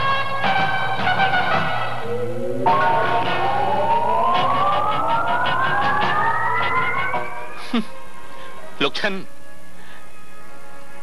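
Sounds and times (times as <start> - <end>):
rising siren-like tone: 1.5 - 8.2.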